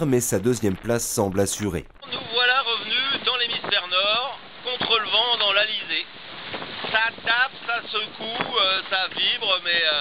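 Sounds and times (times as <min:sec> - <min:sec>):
man talking: 0:00.0 - 0:02.0
rushing wind and water: 0:02.0 - 0:10.0.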